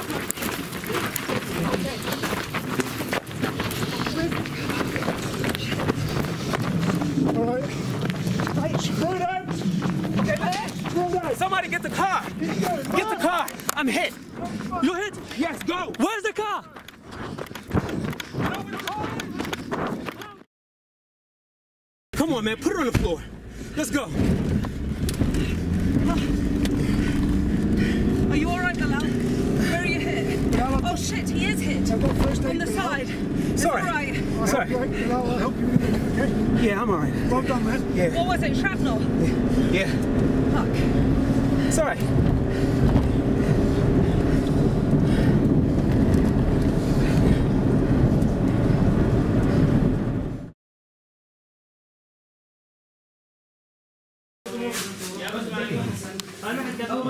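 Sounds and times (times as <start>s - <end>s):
voices: 0.0s - 17.3s, 25.4s - 42.2s
footsteps running on gravel: 0.0s - 20.4s
car engine running hard: 24.0s - 50.5s.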